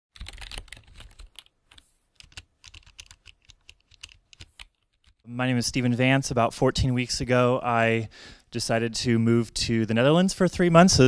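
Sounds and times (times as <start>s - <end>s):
typing on laptop keyboard: 0.2s - 5.3s.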